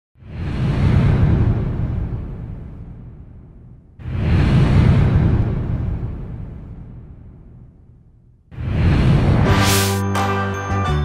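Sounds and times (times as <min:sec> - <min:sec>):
deep rumble: 0:00.2 - 0:09.9
cinematic whoosh: 0:00.2 - 0:10.2.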